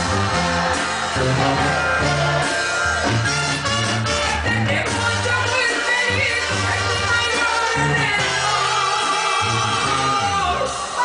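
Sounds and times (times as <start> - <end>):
banda music over a pa: 0.0 - 11.0
bass line: 0.0 - 11.0.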